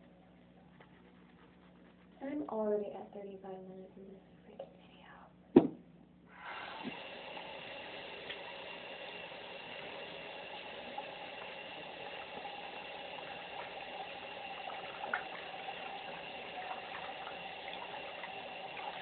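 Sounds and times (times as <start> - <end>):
water running from a tap: 6.3 - 19.0.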